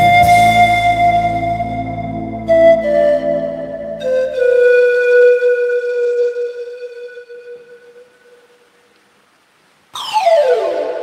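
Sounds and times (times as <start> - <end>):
pan flute: 0.0 - 8.7, 10.0 - 11.0.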